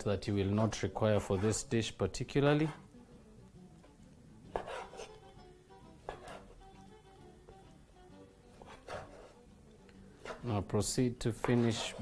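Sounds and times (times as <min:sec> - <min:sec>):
faint background music: 0:00.0 - 0:12.0
knife chopping on wooden board: 0:06.1 - 0:06.5, 0:11.4 - 0:12.0.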